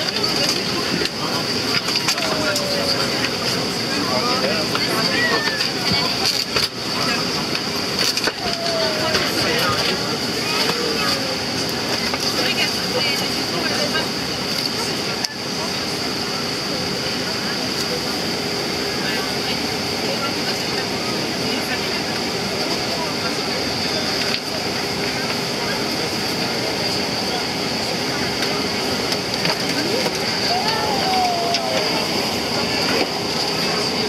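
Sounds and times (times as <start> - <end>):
indistinct voices: 0.0 - 12.5, 27.4 - 34.0
jet engine whining: 0.0 - 13.5, 23.2 - 34.0.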